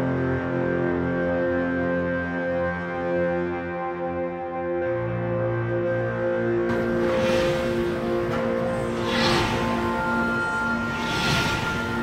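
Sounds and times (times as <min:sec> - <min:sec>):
background music with held tones: 0:00.0 - 0:12.0
flame burst roaring whoosh: 0:06.7 - 0:12.0.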